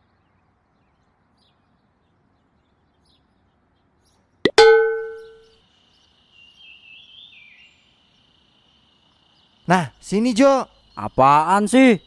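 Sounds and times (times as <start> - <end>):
faint bird chirps: 0.0 - 12.0
ringing metallic clang: 4.5 - 5.4
high insect-like trill: 5.1 - 12.0.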